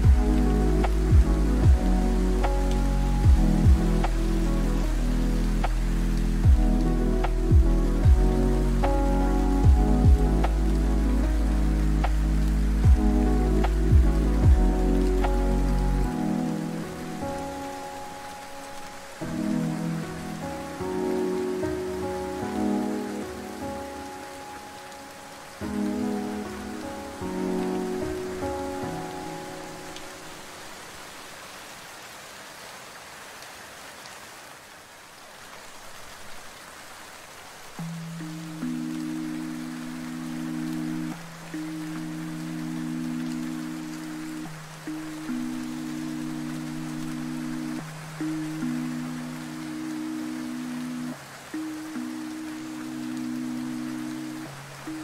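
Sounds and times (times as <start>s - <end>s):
lo-fi hip-hop music: 0.0s - 25.0s
slow held chords: 0.0s - 30.7s, 37.8s - 55.0s
steady rain: 0.0s - 55.0s.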